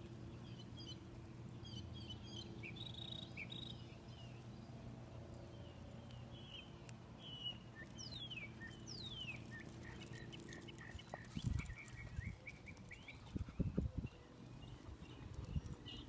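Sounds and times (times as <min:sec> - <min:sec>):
birds whistling and chirping: 0:01.6 - 0:04.7, 0:06.1 - 0:16.0.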